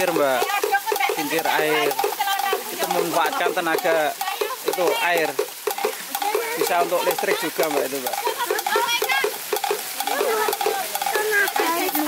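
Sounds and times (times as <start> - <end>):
water bubbling: 0.0 - 12.0
water pouring and splashing: 0.0 - 12.0.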